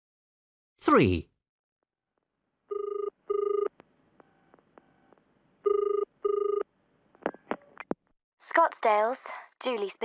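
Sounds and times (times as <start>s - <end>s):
telephone ringing: 2.7s - 6.7s.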